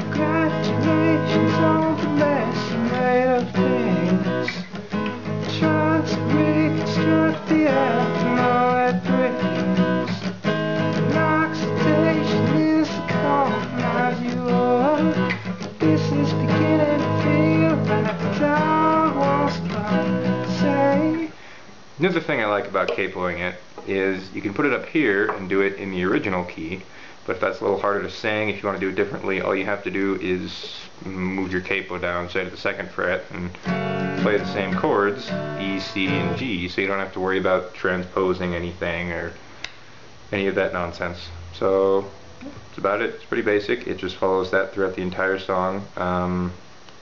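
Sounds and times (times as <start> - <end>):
man singing: 0.0 - 10.3, 10.9 - 21.4, 34.2 - 37.4
acoustic guitar strumming: 0.0 - 21.6, 33.6 - 36.9.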